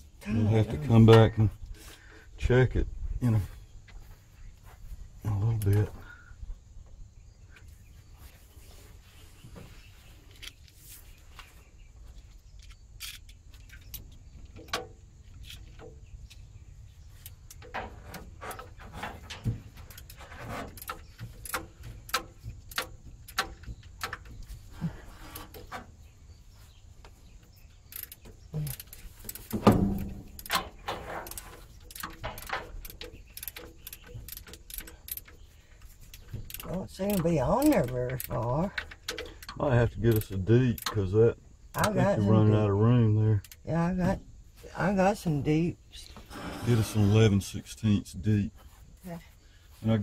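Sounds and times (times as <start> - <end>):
metallic clicks of hand tools: 12.6 - 16.4, 19.3 - 24.5, 27.9 - 35.4, 36.1 - 41.0.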